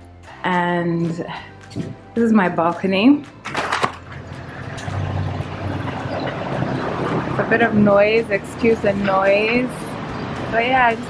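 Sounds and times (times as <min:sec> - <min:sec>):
city street traffic: 0:03.2 - 0:11.0.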